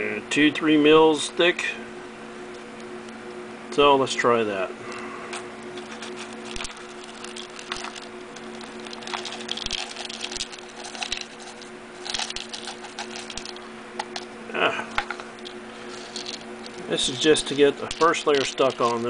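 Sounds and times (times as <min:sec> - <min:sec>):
steady low hum: 0:00.0 - 0:19.0
foil pieces clicking and crinkling: 0:05.8 - 0:14.3, 0:15.4 - 0:19.0.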